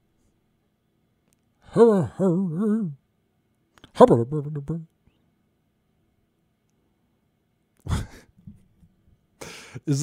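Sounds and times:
man sighing: 0:07.8 - 0:08.4, 0:09.4 - 0:09.9
faint breaths: 0:09.4 - 0:09.9.

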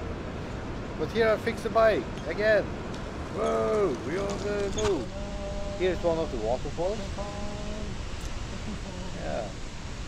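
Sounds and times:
waterfall roaring: 0:03.2 - 0:10.0
man's drawn-out voice: 0:03.4 - 0:08.0.

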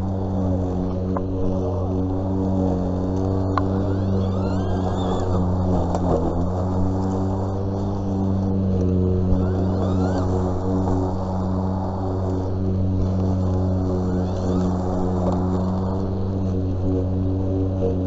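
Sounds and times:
electric lawn mower humming: 0:00.0 - 0:18.0.

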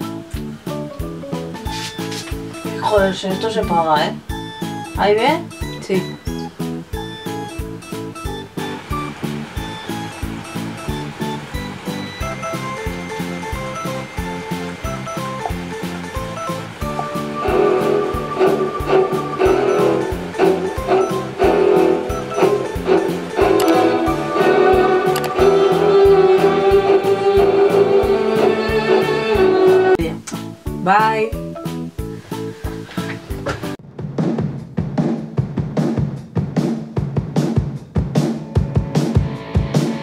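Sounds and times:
background music with steady beat: 0:00.0 - 0:40.0.

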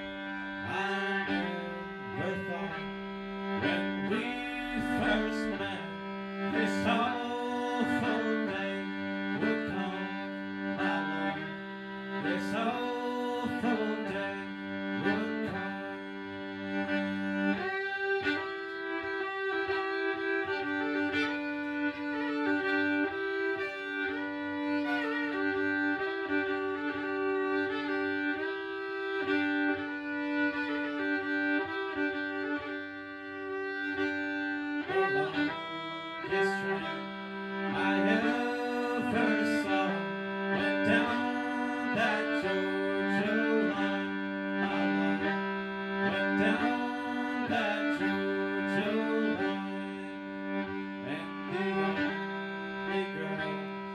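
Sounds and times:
fiddle melody over drone: 0:00.0 - 0:53.9.

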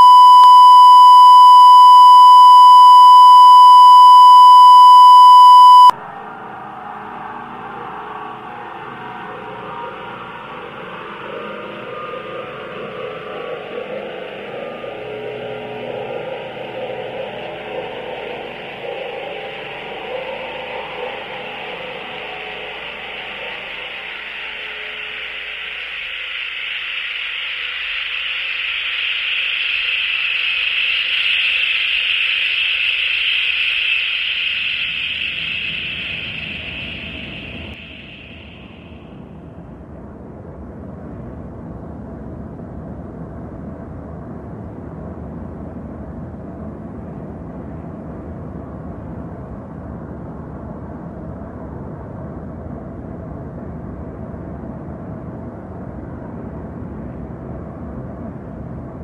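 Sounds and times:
steady electronic beep tone: 0:00.0 - 0:06.1, 0:11.2 - 0:39.2
hissing noise: 0:13.7 - 0:39.2.

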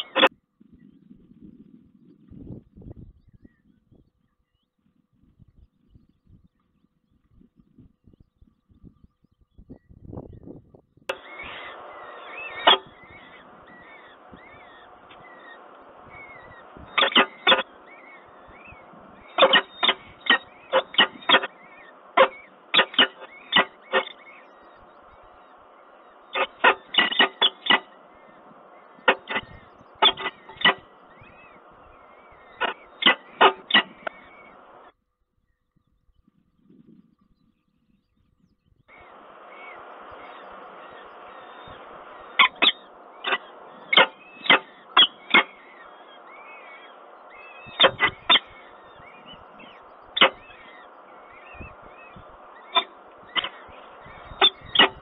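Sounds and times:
faint high chirps: 0:05.6 - 0:55.0
falcon calls: 0:11.1 - 0:34.9, 0:38.9 - 0:55.0
steady background hiss: 0:11.1 - 0:34.9, 0:38.9 - 0:55.0.

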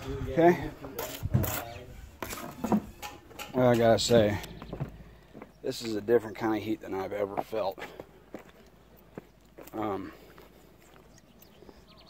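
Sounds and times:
bricklaying scrapes and knocks: 0:00.9 - 0:04.4.

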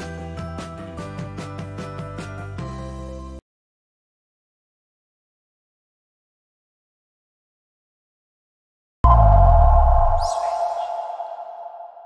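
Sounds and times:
deep bass hit: 0:09.0 - 0:12.0
sustained synth chord: 0:09.0 - 0:12.0
brief swoosh: 0:09.1 - 0:12.0.

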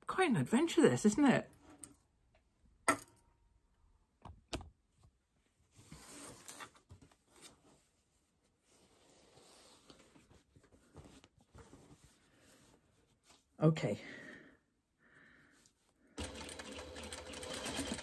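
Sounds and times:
fabric rustling: 0:05.4 - 0:13.6.

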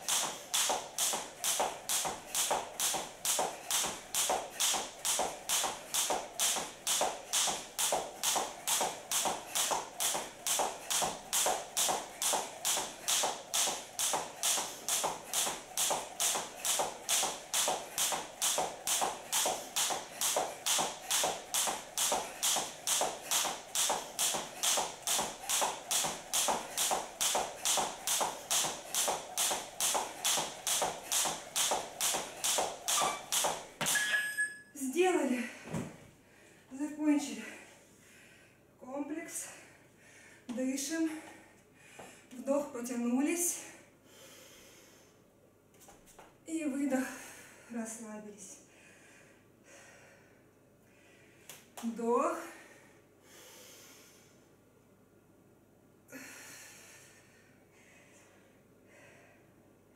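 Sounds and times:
jump rope slapping floor: 0:00.0 - 0:34.1.

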